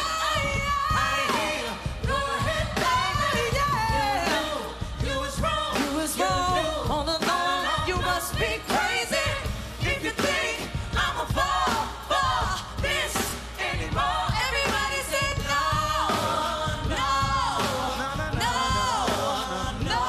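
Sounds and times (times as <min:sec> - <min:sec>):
live band with drums: 0:00.0 - 0:20.0
woman singing into microphone: 0:00.0 - 0:20.0.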